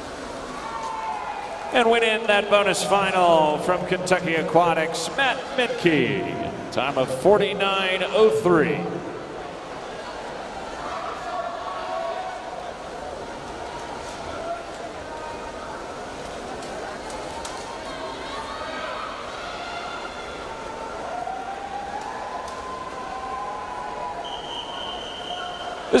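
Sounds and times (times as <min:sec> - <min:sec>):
crowd chattering: 0:00.0 - 0:26.0.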